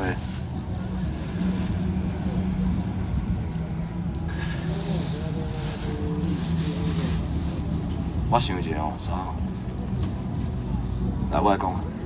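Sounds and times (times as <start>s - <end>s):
faint voices talking: 0.0s - 12.0s
low mechanical hum: 0.0s - 12.0s.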